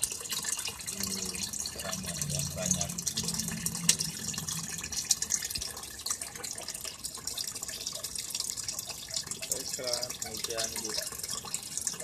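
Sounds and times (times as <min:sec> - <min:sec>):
water pouring and splashing into tank: 0:00.0 - 0:12.0.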